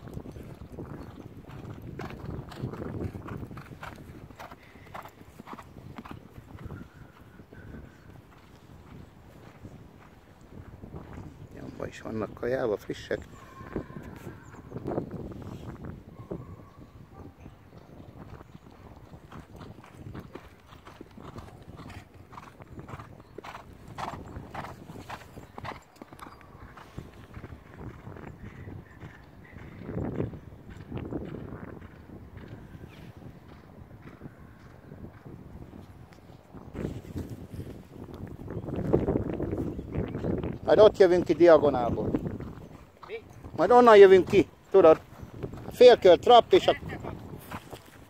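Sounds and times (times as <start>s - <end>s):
horse hoofbeats on grass and dirt: 0.0s - 11.6s, 17.7s - 32.6s, 36.6s - 48.0s.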